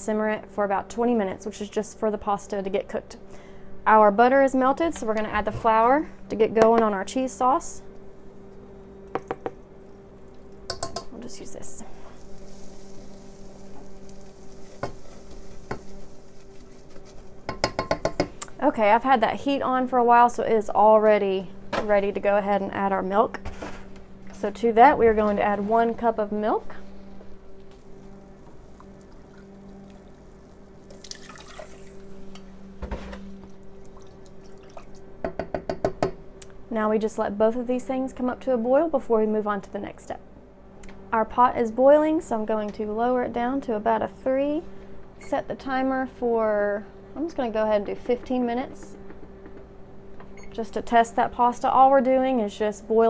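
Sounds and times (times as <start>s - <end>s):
low steady hum: 0.0s - 53.0s
measuring spoon tapping: 10.7s - 11.1s, 17.5s - 18.3s
milk pouring into a pan: 12.2s - 17.0s, 28.8s - 32.0s, 33.8s - 35.0s.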